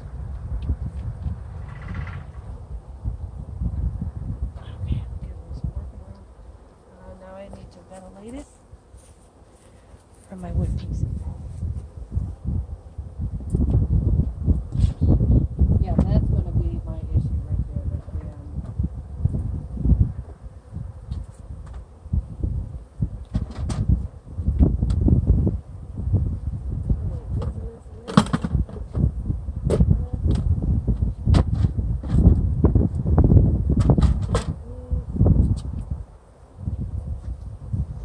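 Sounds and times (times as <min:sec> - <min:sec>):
wind gusting on microphone: 0:00.0 - 0:09.1, 0:10.0 - 0:38.0.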